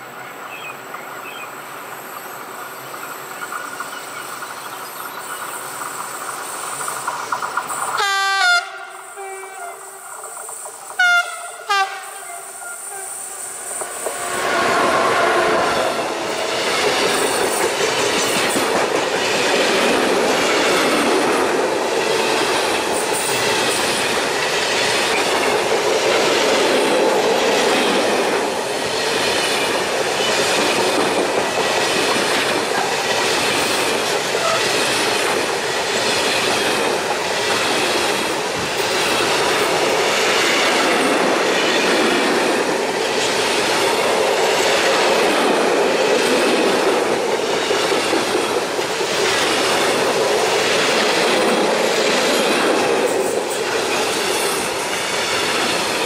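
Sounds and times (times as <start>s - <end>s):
train wheels rumbling on rails: 0.0s - 56.0s
wheels clacking on rail joints: 3.4s - 8.2s, 9.6s - 12.1s, 15.8s - 56.0s.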